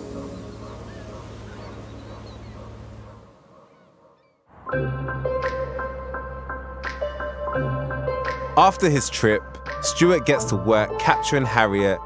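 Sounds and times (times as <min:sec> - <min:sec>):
harbour ambience hum: 0:00.0 - 0:04.4
birds calling: 0:00.0 - 0:04.5.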